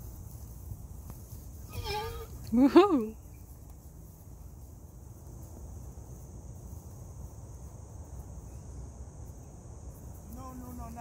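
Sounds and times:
horse whinnying: 1.7s - 2.4s.

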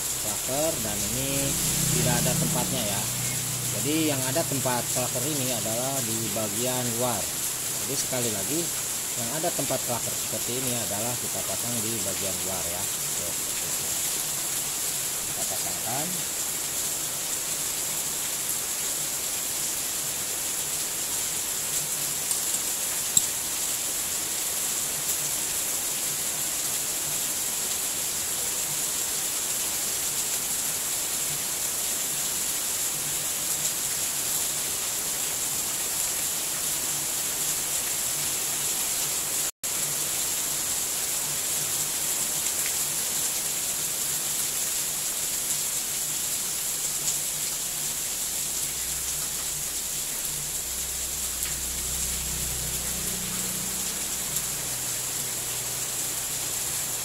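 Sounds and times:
steady high hiss: 0.0s - 19.0s, 37.1s - 57.0s.

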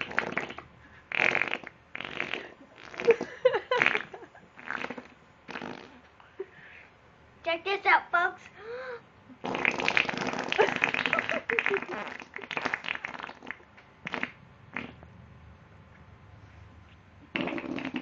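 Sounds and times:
blowing raspberries on skin: 0.0s - 6.0s, 9.4s - 15.0s, 17.3s - 18.0s.

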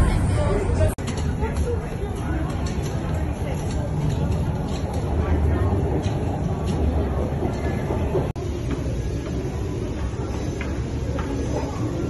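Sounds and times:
indistinct voices: 0.0s - 12.0s
subway train rumble: 0.0s - 12.0s.

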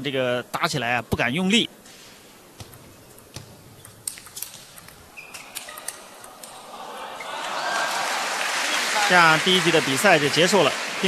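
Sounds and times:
table tennis ball clicks: 2.6s - 6.6s.

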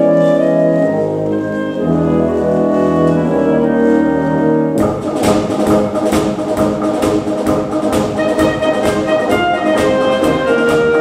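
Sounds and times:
brass and woodwind notes: 0.0s - 11.0s
steady drum beat: 4.8s - 11.0s.

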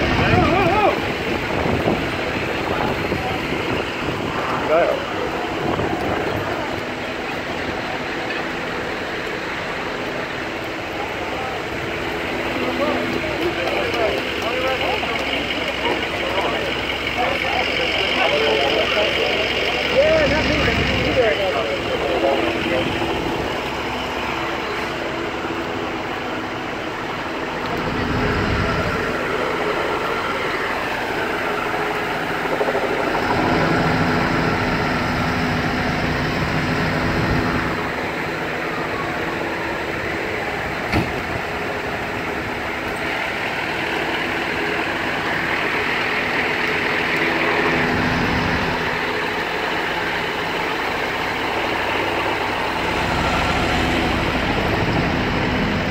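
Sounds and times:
heavy engines idling: 0.0s - 55.9s.

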